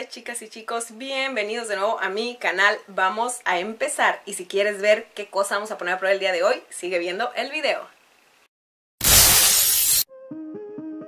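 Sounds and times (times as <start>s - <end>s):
loud crashing shatter noise: 9.0s - 10.1s.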